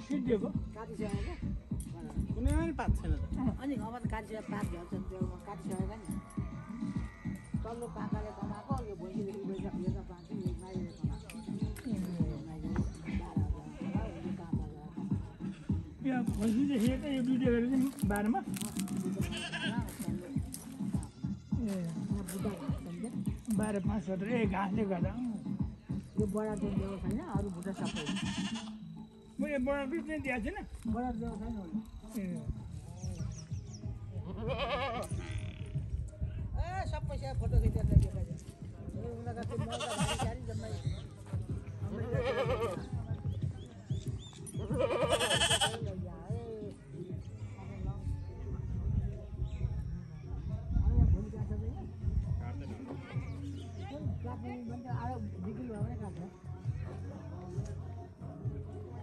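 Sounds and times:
goat bleating: 19.0 - 19.9, 27.7 - 28.8, 34.3 - 35.3, 39.4 - 40.4, 41.9 - 42.9, 44.6 - 45.9.

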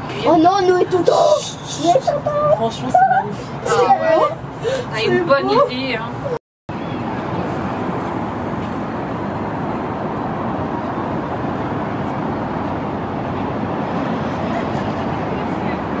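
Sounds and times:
people's voices: 0.0 - 6.4
road traffic noise: 0.0 - 16.0.

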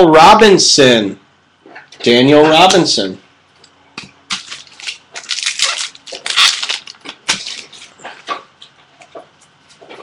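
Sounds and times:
cards rustling: 4.3 - 8.0.

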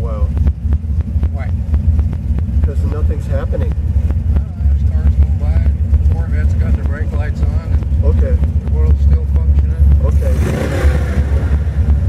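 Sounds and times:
car engine exhaust rumble: 0.0 - 12.0
people's voices: 1.2 - 11.7.

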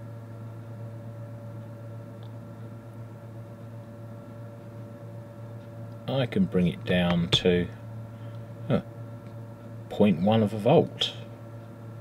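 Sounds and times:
transformer mains hum: 0.0 - 12.0.

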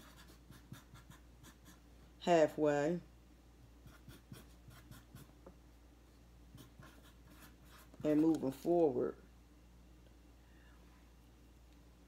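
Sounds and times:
marker pen scratching: 0.0 - 1.8, 3.8 - 5.3, 6.5 - 8.8.

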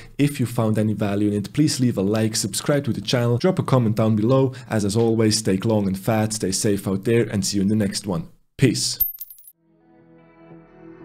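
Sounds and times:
soft music with sustained chords: 9.7 - 11.0.

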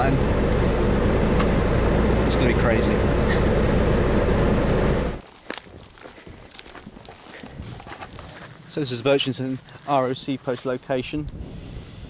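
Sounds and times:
footsteps on dry ground: 5.2 - 12.0.

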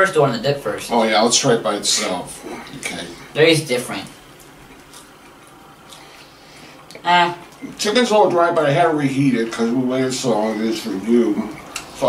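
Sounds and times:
low room hiss: 0.0 - 12.0
faint chewing: 1.9 - 7.8
soft mouth clicks: 4.7 - 6.3.

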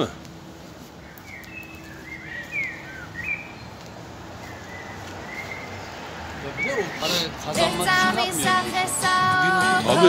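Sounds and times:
birds chirping: 0.0 - 10.0
street background hiss: 0.0 - 10.0.

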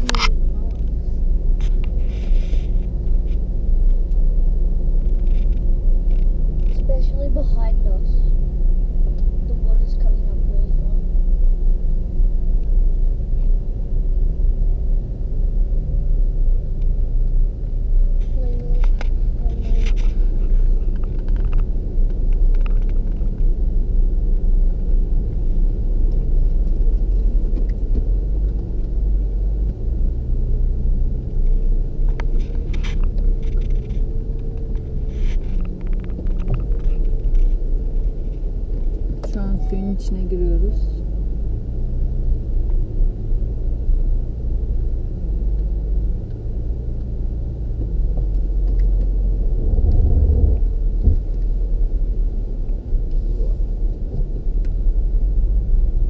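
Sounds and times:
car driving on sand: 0.0 - 56.0.

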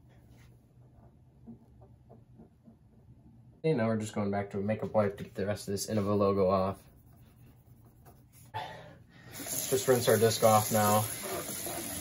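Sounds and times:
low room hum: 0.0 - 11.1.

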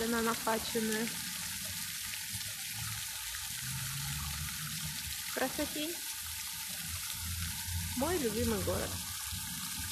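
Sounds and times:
fountain water splashing: 0.0 - 9.9.

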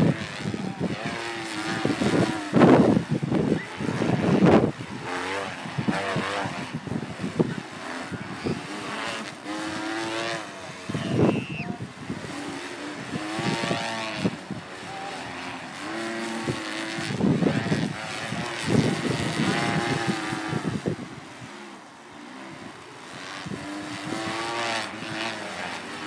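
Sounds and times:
stunt kites buzzing: 0.0 - 26.0
wind gusts on microphone: 0.0 - 26.0.

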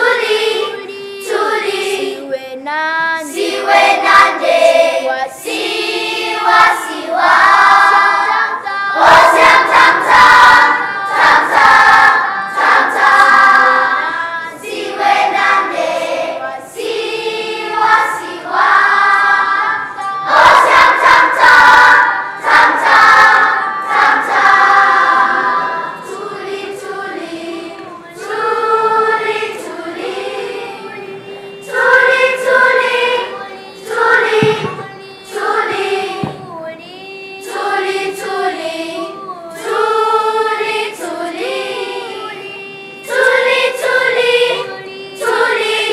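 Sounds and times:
children's choir singing: 0.0 - 45.9.

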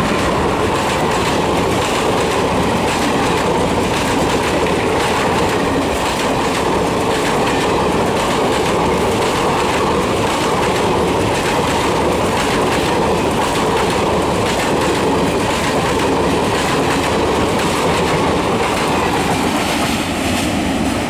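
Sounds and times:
train passing rumble: 0.0 - 21.0.

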